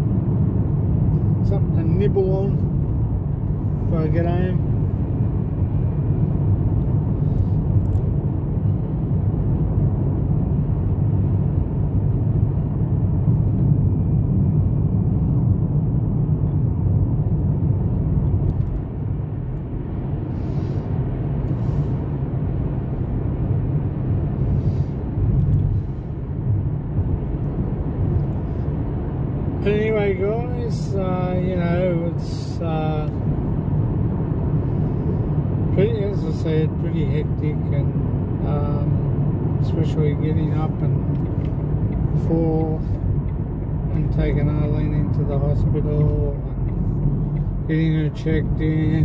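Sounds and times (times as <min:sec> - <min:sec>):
car cabin road rumble: 0:00.0 - 0:49.0.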